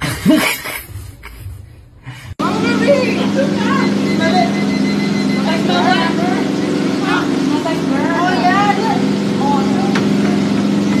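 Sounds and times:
voices: 0:02.4 - 0:11.0.

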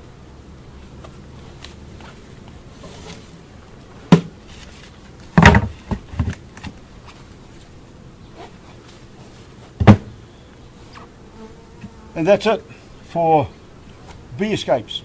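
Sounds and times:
bees buzzing: 0:00.0 - 0:15.0
hive lid knocking: 0:09.8 - 0:10.2.

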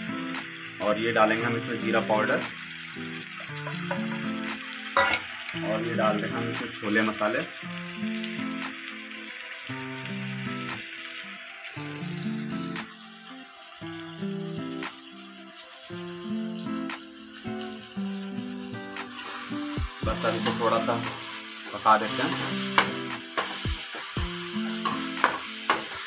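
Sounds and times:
faint sizzle of frying: 0:00.0 - 0:26.0
instrumental music: 0:01.5 - 0:06.9, 0:07.5 - 0:26.0.

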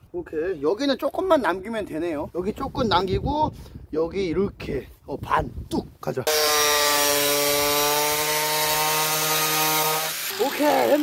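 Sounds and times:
angle grinder cutting pipe: 0:06.3 - 0:11.0.

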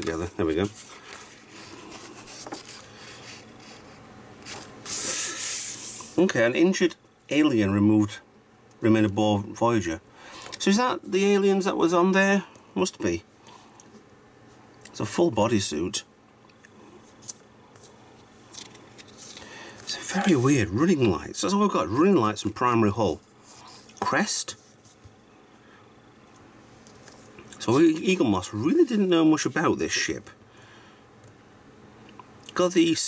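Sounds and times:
magazine pages turning: 0:00.0 - 0:05.4, 0:17.2 - 0:21.0
paper rubbing swish: 0:00.6 - 0:06.2.

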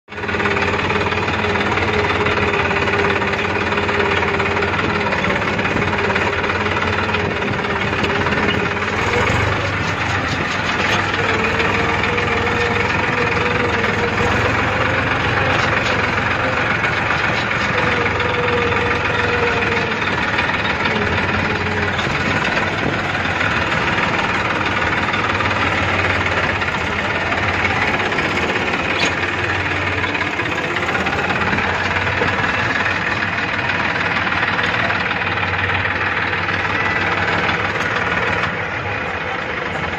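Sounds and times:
tractor diesel engine running: 0:00.0 - 0:39.9.

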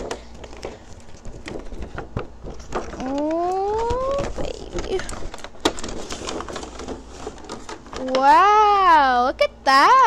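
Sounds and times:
cardboard and plastic clicks and scrapes: 0:00.0 - 0:08.2.

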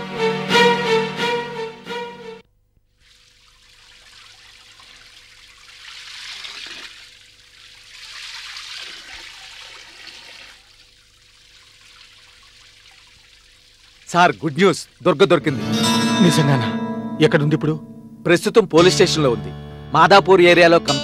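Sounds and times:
garden hose spraying shrubs: 0:02.9 - 0:15.5.

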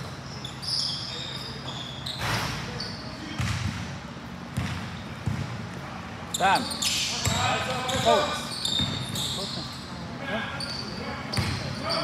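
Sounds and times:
high squeaks: 0:00.2 - 0:03.1, 0:06.3 - 0:09.9
basketball bouncing on gym court: 0:03.3 - 0:05.8, 0:07.2 - 0:09.5, 0:11.3 - 0:11.8.

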